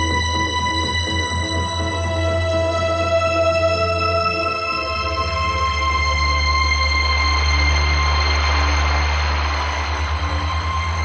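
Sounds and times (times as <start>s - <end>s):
dark house music: 0.0s - 11.0s.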